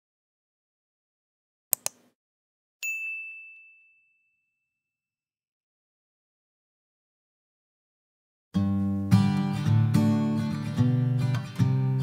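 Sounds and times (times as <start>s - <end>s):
high bright chime: 2.8s - 4.8s.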